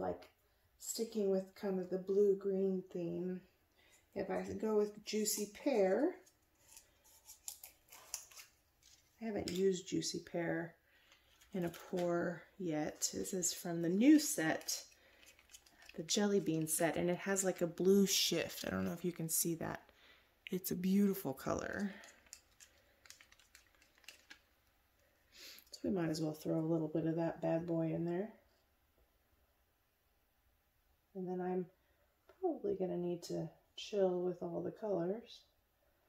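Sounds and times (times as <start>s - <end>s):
small objects clicking and rustling: 12.9s - 17.6s, 21.6s - 24.6s.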